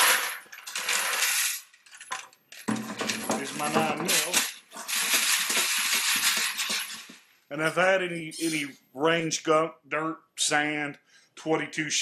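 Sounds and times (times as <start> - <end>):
brass cartridge cases rattling: 0.0 - 7.2.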